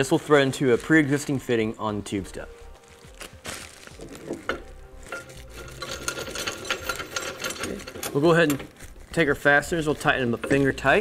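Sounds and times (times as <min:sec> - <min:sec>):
plastic wrap rustling: 0:00.0 - 0:11.0.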